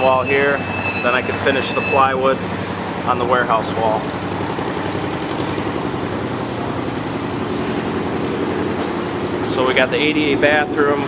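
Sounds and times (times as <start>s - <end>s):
machine droning: 0.0s - 11.0s.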